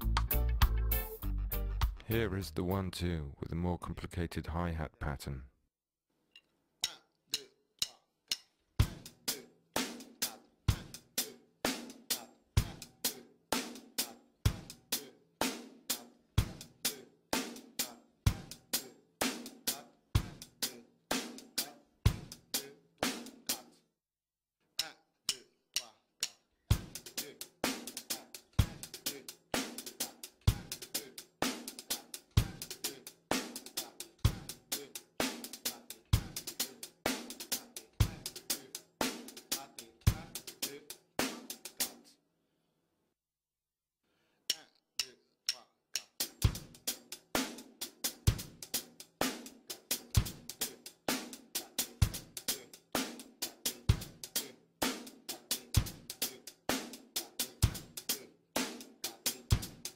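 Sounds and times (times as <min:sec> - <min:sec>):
reggae drum groove: 0:00.0 - 0:03.2, 0:06.8 - 0:23.8, 0:24.8 - 0:42.1, 0:45.9 - 0:59.9.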